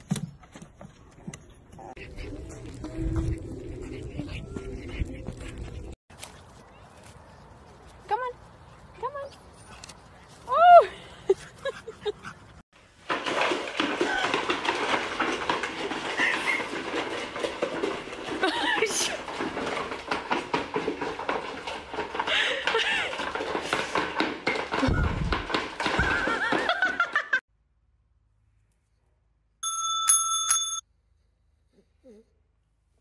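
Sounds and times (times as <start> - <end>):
puppies: 1.7 - 6.6.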